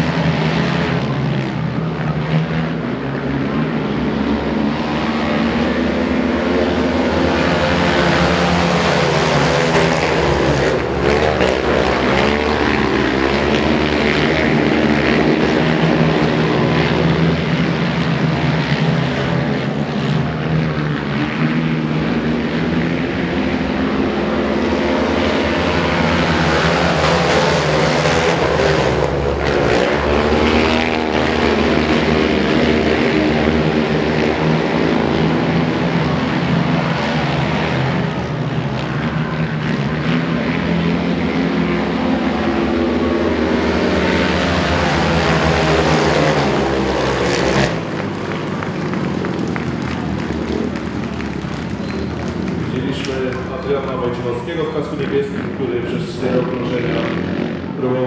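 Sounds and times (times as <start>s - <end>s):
racing quad engines: 0.0s - 58.0s.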